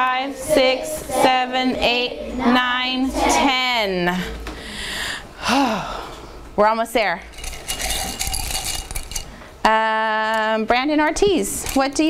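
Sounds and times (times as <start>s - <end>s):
small hard objects clinking: 7.3s - 9.4s.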